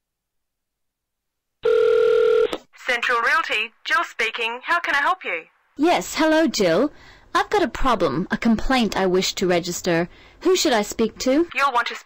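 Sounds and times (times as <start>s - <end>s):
telephone ringing tone: 1.6s - 2.5s.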